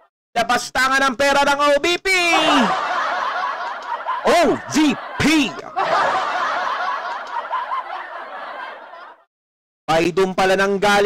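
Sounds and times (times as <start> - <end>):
person laughing: 2.3 - 7.9.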